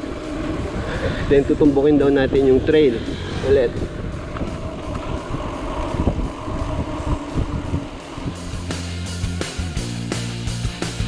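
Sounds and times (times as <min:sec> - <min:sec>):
wind on microphone: 0:00.0 - 0:09.9
bike tyres rumbling on concrete: 0:00.0 - 0:11.0.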